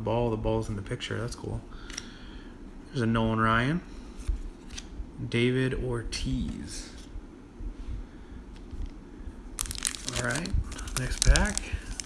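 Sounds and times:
wrapper crinkling: 9.6s - 12.0s.

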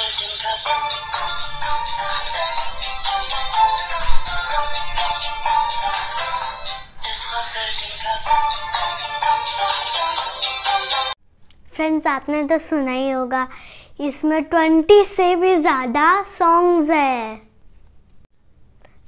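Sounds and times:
toy speaker playing song: 0.0s - 11.2s.

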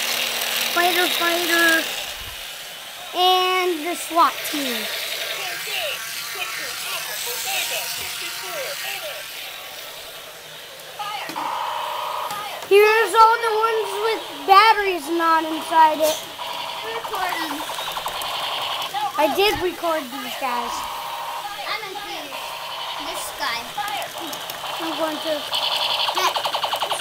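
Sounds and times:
toy machine-gun rattle: 0.0s - 10.2s, 12.7s - 27.0s
steady hiss: 0.0s - 26.9s
indistinct voices talking: 0.6s - 27.0s.

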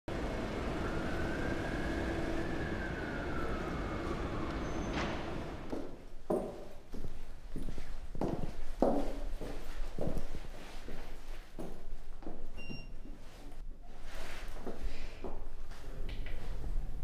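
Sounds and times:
distant siren wailing: 0.1s - 5.8s
city traffic noise: 0.1s - 6.0s
footsteps on hard floor: 5.7s - 12.4s.

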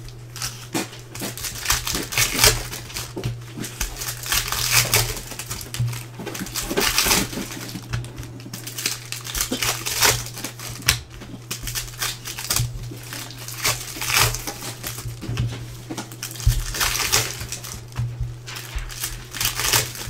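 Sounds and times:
foil wrappers crinkling: 0.0s - 20.0s
steady low hum: 0.0s - 20.0s.

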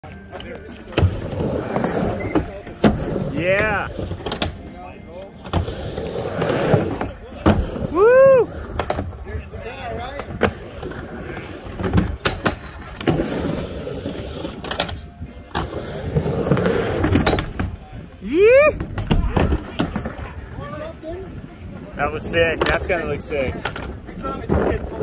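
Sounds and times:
skateboard wheels rolling on wood: 0.1s - 4.7s, 5.4s - 25.0s
person whooping: 7.9s - 8.5s, 18.2s - 18.8s.

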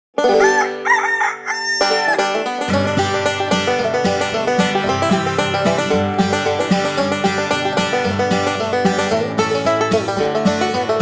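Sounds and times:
banjo music: 0.1s - 11.0s
rooster crowing: 0.4s - 2.4s.

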